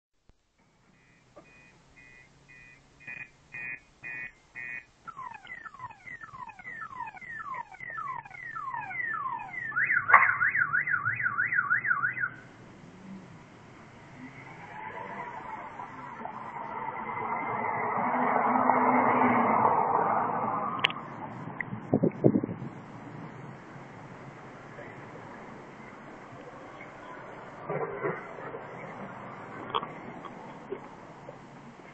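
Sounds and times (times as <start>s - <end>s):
car alarm siren: 0.9s - 12.5s, 14.2s - 20.8s
broad rush of noise: 12.3s - 31.9s.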